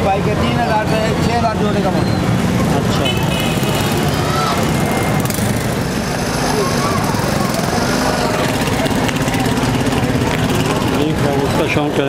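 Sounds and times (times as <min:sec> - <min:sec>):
rumble of engines and traffic: 0:00.0 - 0:12.0.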